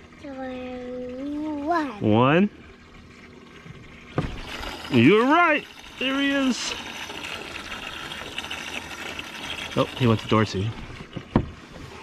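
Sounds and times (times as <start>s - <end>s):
aerator pump running: 0.0s - 12.0s
water splashing and trickling: 0.0s - 12.0s.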